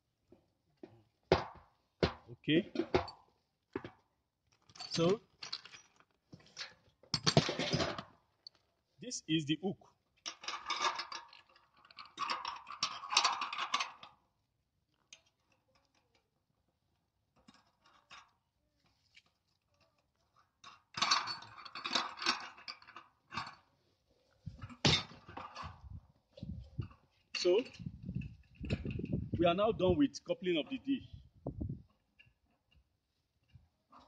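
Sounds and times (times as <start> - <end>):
metal bolts clinking and rattling: 2.7 - 8.7, 10.2 - 29.4.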